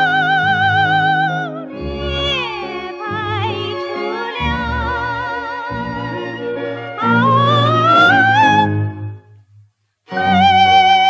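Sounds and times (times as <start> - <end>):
woman singing with vibrato: 0.0 - 6.2, 7.0 - 8.8, 10.1 - 11.0.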